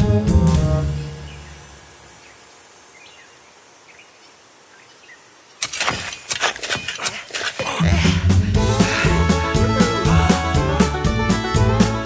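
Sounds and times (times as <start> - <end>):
quiet nature ambience: 0.8 - 10.1
cartoon music: 7.8 - 12.0.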